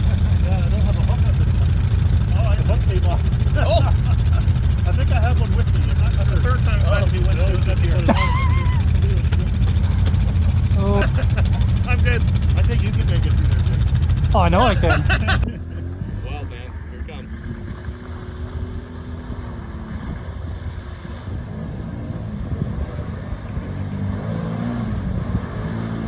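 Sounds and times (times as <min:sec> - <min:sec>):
voices talking: 0:00.0 - 0:18.8
quad bike engine idling: 0:00.0 - 0:19.3.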